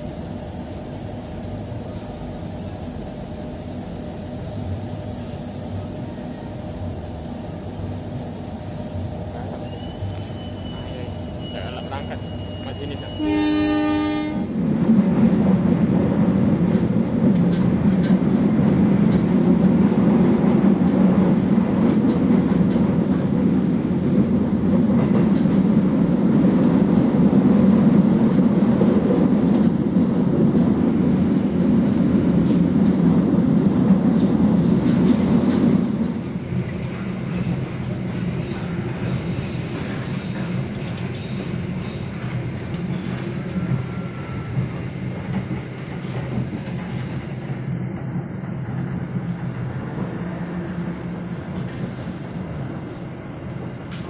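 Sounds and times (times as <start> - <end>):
train wheels rumbling on rails: 0.0 - 54.0
train horn: 12.9 - 14.6.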